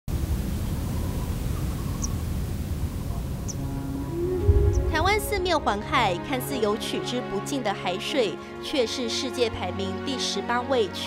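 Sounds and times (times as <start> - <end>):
steady low rumble: 2.2 - 7.0.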